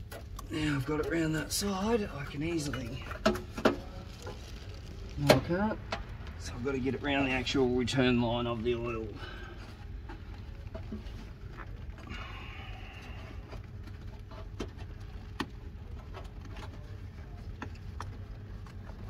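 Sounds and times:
steady low hum: 0:00.0 - 0:19.0
fabric rustle: 0:01.5 - 0:12.0.

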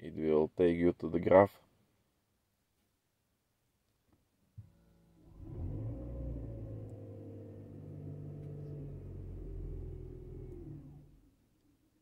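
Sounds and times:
car engine revving: 0:05.2 - 0:11.2.

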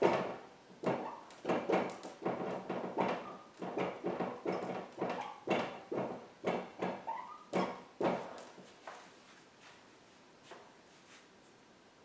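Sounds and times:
marker squeaking on whiteboard: 0:01.0 - 0:01.3, 0:03.2 - 0:03.6, 0:04.4 - 0:05.5, 0:06.9 - 0:07.9.

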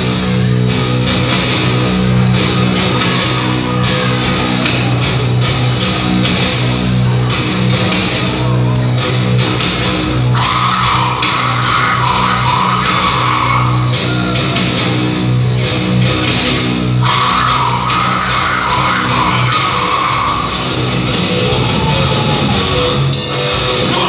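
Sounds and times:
heavy metal band playing live: 0:00.0 - 0:24.0.

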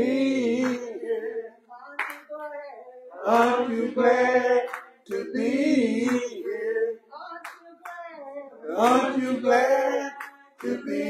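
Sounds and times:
person singing gospel: 0:00.0 - 0:11.0
hand claps: 0:00.6 - 0:01.0, 0:02.0 - 0:02.4, 0:04.6 - 0:05.3, 0:06.0 - 0:06.4, 0:07.4 - 0:08.1, 0:10.1 - 0:11.0.

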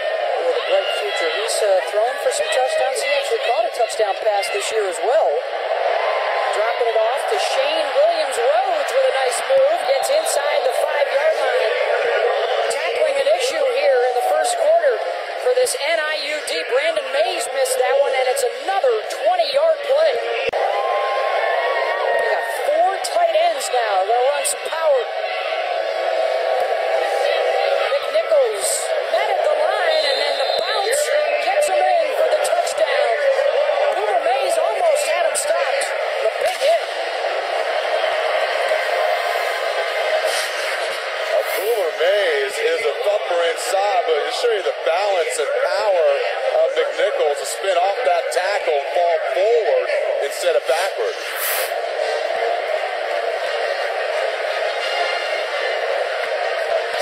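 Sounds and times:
stadium crowd shouting: 0:00.0 - 0:57.0.

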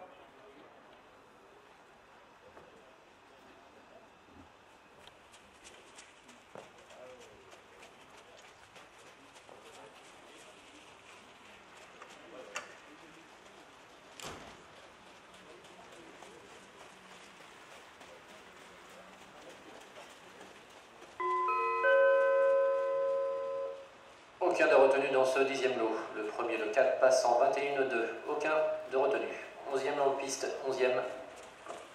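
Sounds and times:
electronic attention chime: 0:21.2 - 0:23.8.

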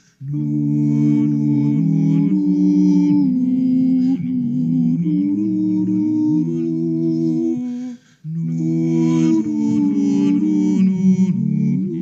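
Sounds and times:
sustained wordless vocal notes: 0:00.0 - 0:12.0.

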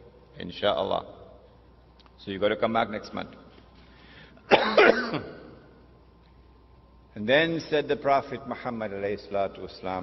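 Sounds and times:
man coughing: 0:04.5 - 0:05.6.

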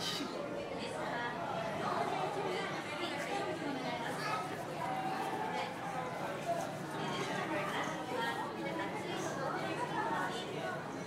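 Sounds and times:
indistinct background chatter: 0:00.0 - 0:11.0.

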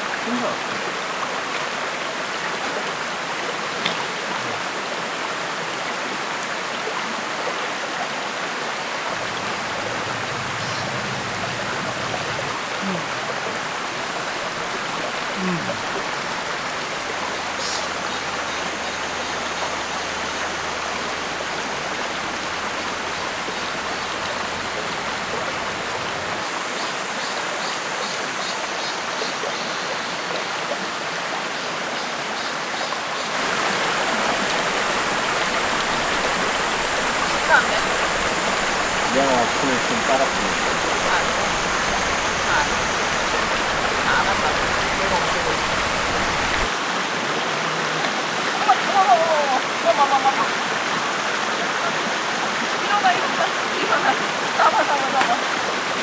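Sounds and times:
rocky creek running: 0:00.0 - 0:56.0
faint voices: 0:09.2 - 0:16.7, 0:35.4 - 0:46.7.

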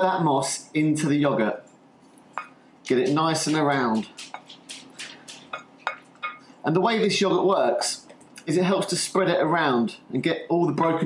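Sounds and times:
spoon scraping glass bowl: 0:02.4 - 0:06.4.

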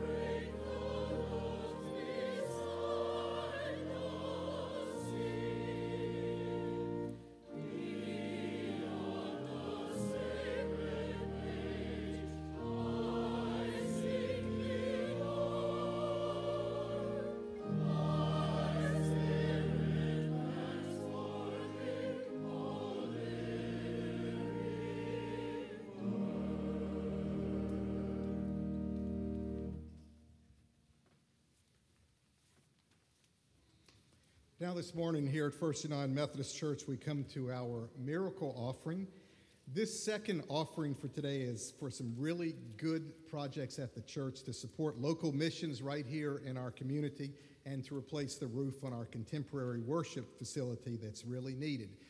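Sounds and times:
choir singing: 0:00.0 - 0:30.0
organ chords: 0:00.0 - 0:30.4.

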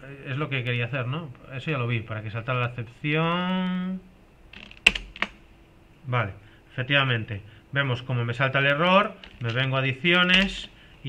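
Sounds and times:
keyboard keys clicking: 0:04.6 - 0:05.4, 0:09.2 - 0:10.8.

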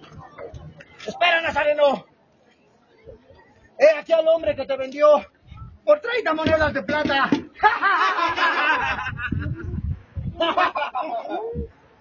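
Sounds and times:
man laughing mockingly: 0:07.6 - 0:11.7.

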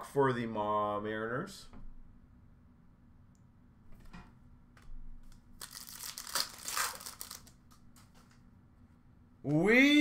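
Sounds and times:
plastic packaging crinkling: 0:05.6 - 0:08.1.

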